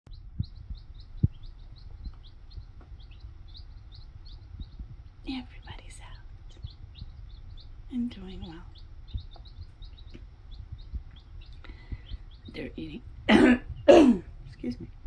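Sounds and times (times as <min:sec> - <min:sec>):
baby chicks peeping: 0:00.1 - 0:15.0
soft low taps: 0:00.4 - 0:05.1, 0:08.4 - 0:12.4.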